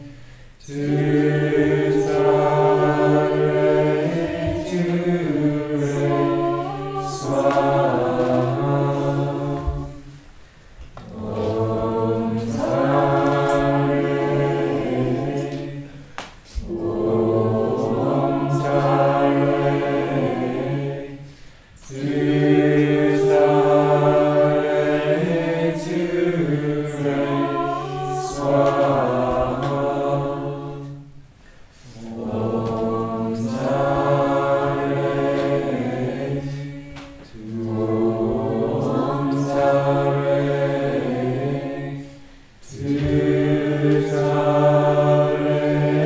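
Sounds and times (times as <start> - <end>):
group of voices chanting: 0.0 - 10.1, 11.0 - 31.0, 31.8 - 46.0.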